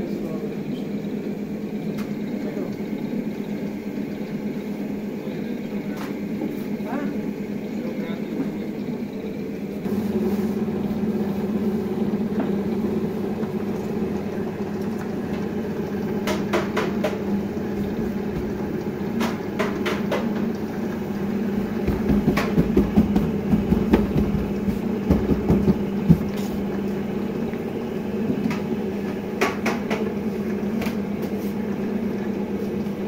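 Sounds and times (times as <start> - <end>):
dough sheeter humming: 0.0 - 33.0
heavy thumps of dough: 21.5 - 26.6.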